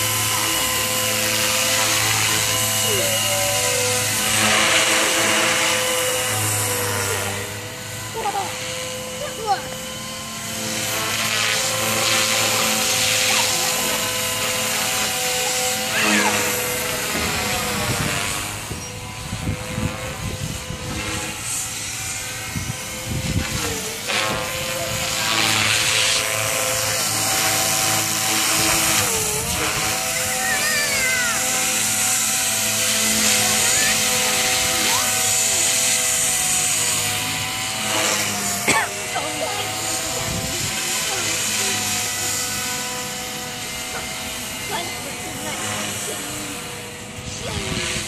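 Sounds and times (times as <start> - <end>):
model helicopter motor whine: 0.0 - 48.0.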